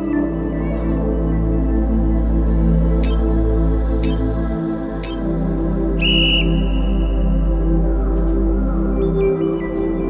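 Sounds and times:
background music: 0.0s - 10.0s
high-pitched whistle blast: 6.0s - 6.8s.

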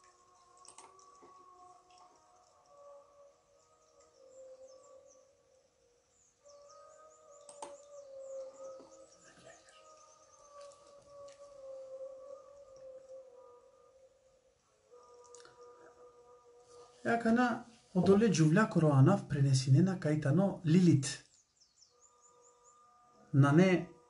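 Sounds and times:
birds chirping: 0.0s - 13.6s, 14.9s - 24.0s.

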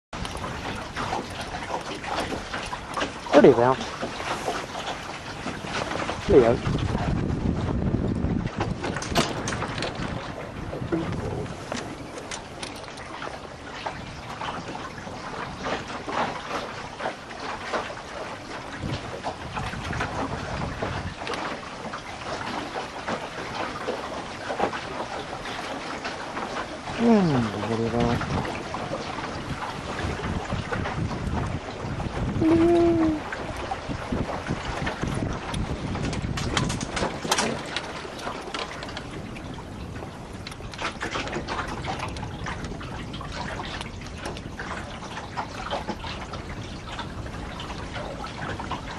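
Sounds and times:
water moving along hull: 0.1s - 48.9s
wind buffeting microphone: 0.2s - 48.9s
wind rushing over microphone: 5.5s - 12.6s, 18.7s - 21.2s, 26.9s - 37.8s
rigging snaps and clicks: 35.5s - 37.9s.

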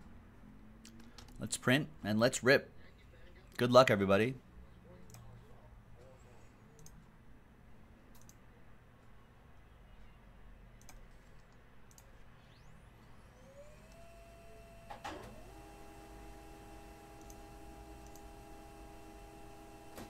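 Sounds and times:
computer mouse clicks: 0.8s - 1.4s, 6.7s - 7.1s, 8.1s - 8.4s, 10.8s - 12.3s, 17.2s - 18.3s
laser printer whining: 12.4s - 20.0s.

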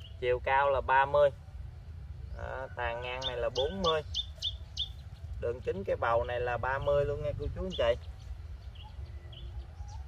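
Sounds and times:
faint bird chirps: 0.0s - 10.0s
steady low rumble: 0.0s - 10.0s.

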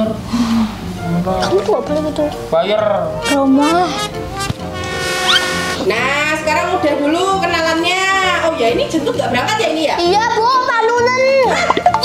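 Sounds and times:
horn-like sustained tone: 3.2s - 6.1s.

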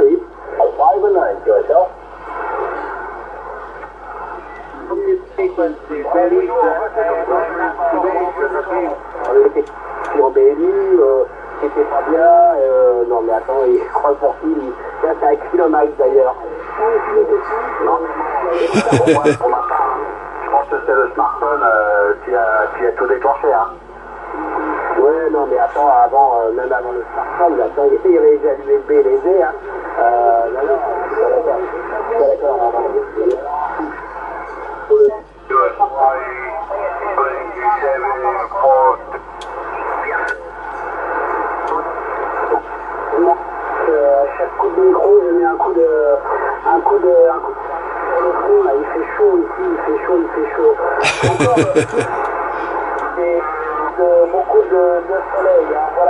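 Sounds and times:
radio speech over speaker: 17.9s - 19.8s, 49.9s - 52.2s.

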